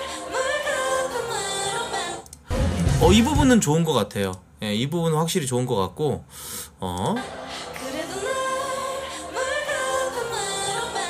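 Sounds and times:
women singing live: 0.0s - 2.4s, 7.2s - 11.0s
pre-recorded backing vocals: 0.0s - 4.8s, 6.2s - 11.0s.

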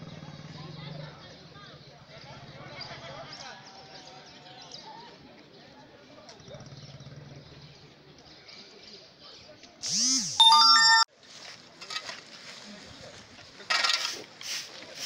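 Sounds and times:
bright synthetic chime: 10.4s - 11.1s.

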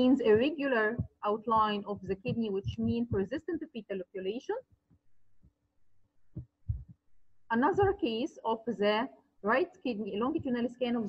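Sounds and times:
soft low thumps: 0.0s - 3.8s, 6.2s - 8.2s, 10.1s - 10.7s
faint electrical hum: 6.7s - 11.0s.

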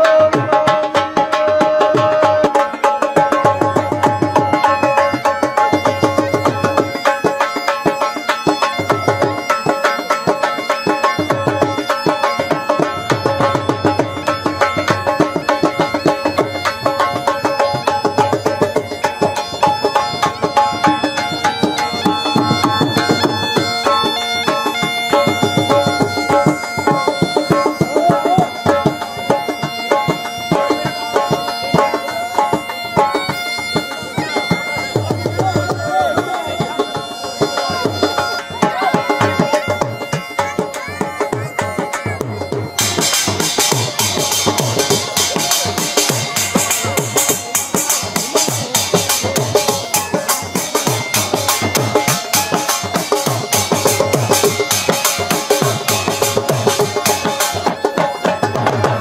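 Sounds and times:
bagpipes playing a melody: 0.0s - 59.0s
drum beating fast rhythm: 0.0s - 59.0s.

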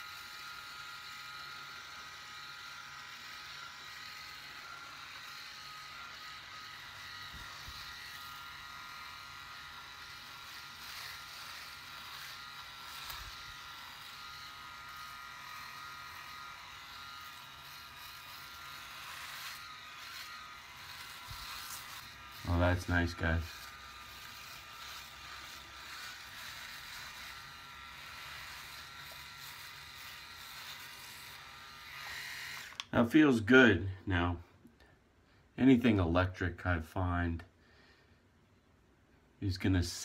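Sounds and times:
electric shaver humming: 0.0s - 33.5s.

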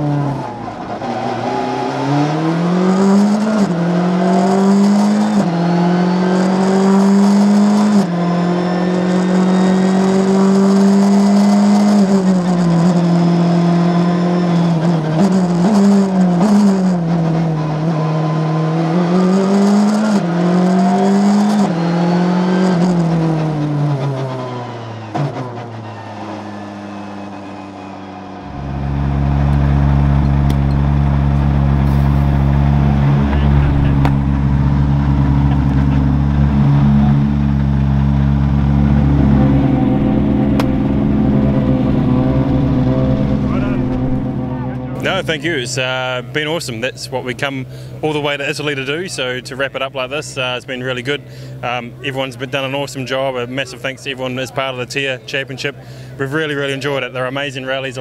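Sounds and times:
rally car engine revving: 0.0s - 58.0s
sustained tones with deep bass: 28.3s - 46.7s.

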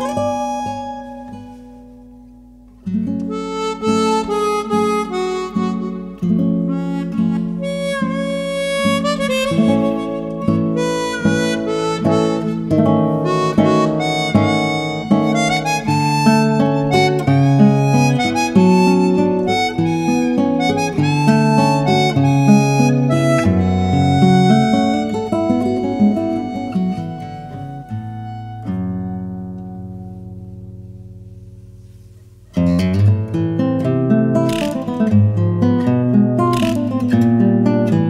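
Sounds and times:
harmonica melody: 0.0s - 30.3s, 34.4s - 35.4s
classical guitar plucking: 0.0s - 38.0s.

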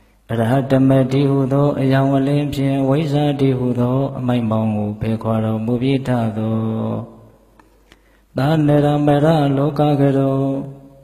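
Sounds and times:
man chanting in long held tones: 0.2s - 7.4s, 8.3s - 11.0s.

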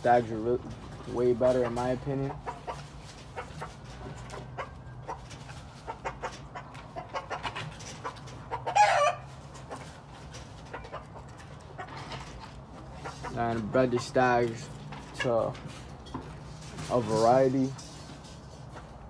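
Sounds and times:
fowl clucking: 1.3s - 14.3s.

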